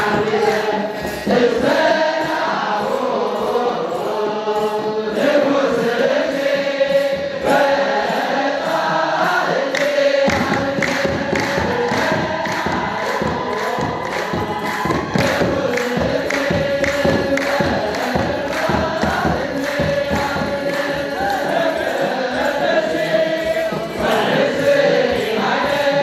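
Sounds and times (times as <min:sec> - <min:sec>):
hand drums beating: 0:00.0 - 0:26.0
men chanting in unison: 0:00.0 - 0:26.0.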